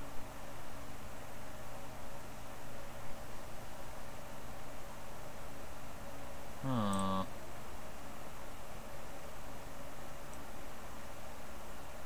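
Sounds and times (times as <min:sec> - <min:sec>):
man's low vocal sound: 0:06.6 - 0:07.3.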